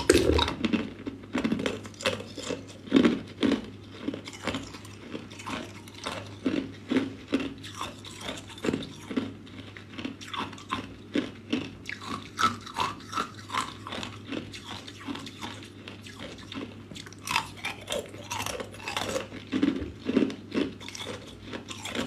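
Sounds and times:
person crunching ice cubes: 0.0s - 22.0s.

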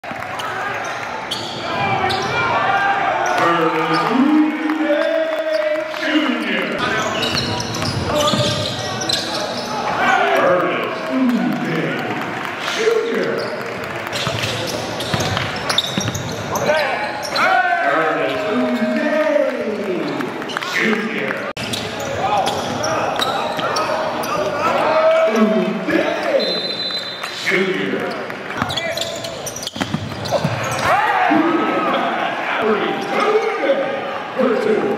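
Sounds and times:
crowd voices: 0.0s - 34.9s
players and spectators calling out: 0.2s - 34.9s
sneakers squeaking on court: 0.3s - 2.5s, 6.4s - 10.0s, 13.3s - 17.5s, 21.6s - 24.6s, 28.0s - 30.9s
ball bouncing on hardwood court: 13.4s - 16.6s, 29.6s - 30.8s.

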